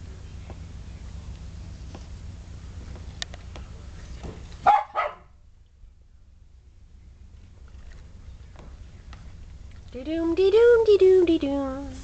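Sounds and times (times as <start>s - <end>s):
dog barking: 4.6s - 5.4s.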